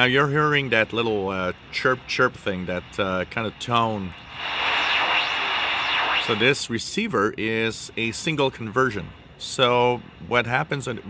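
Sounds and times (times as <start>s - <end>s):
radio static hiss: 1.4s - 7.2s.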